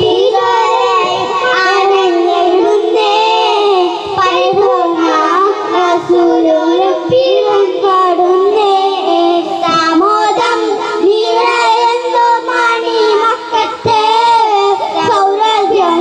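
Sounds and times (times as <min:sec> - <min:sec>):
boys singing into microphones: 0:00.0 - 0:16.0.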